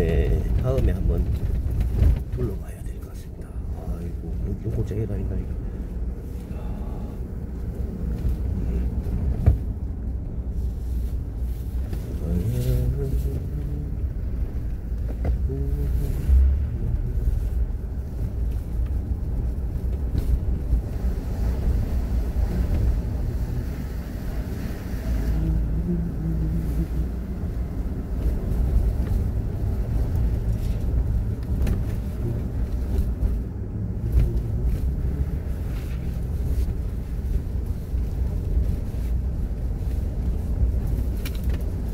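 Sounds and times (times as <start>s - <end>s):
car engine and road noise: 0.0s - 41.9s.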